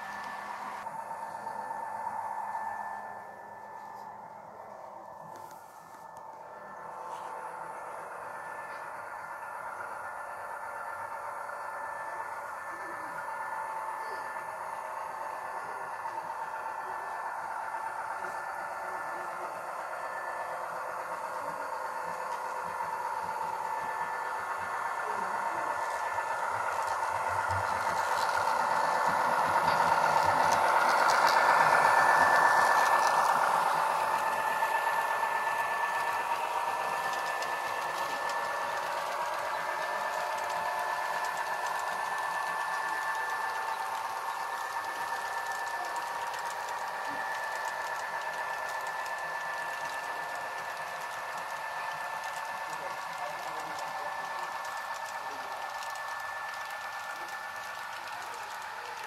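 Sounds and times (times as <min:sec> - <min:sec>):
small motor whine: 0:00.0 - 0:59.0
wheels rattling over rails: 0:00.0 - 0:59.0.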